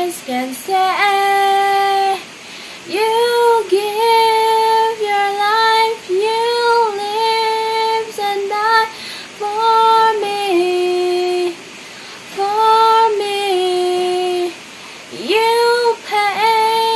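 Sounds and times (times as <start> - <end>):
girl singing unaccompanied: 0.0 - 16.9.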